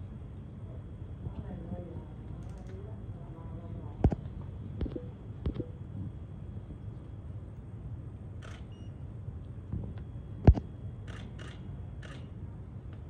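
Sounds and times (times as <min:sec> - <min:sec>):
low room hum: 0:00.0 - 0:13.0
camera shutter clicks: 0:11.1 - 0:12.3.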